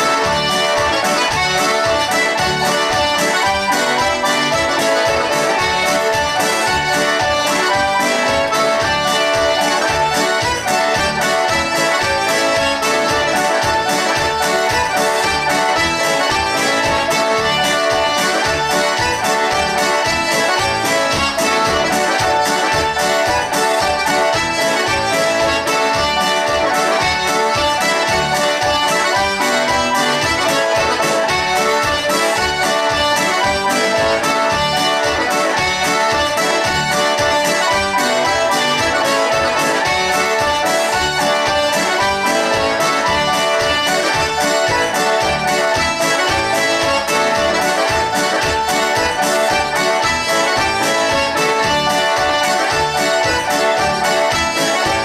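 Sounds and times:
accordion: 0:00.0 - 0:55.0
electronic keyboard playing: 0:00.0 - 0:55.0.

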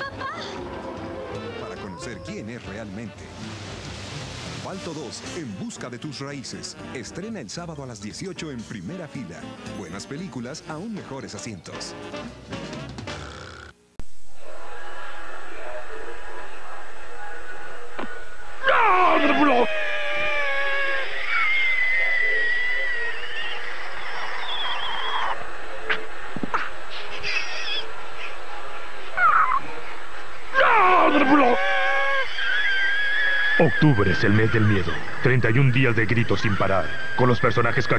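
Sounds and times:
cartoon dog screaming: 0:18.6 - 0:25.4, 0:29.2 - 0:29.6, 0:30.5 - 0:34.9.

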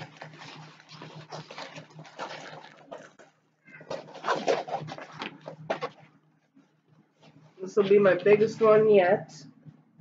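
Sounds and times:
plastic wrapping crinkling: 0:00.0 - 0:06.6.

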